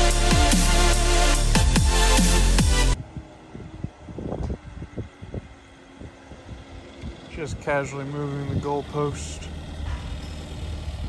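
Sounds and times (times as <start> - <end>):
engine humming: 0.0 - 11.0
wind buffeting microphone: 3.0 - 11.0.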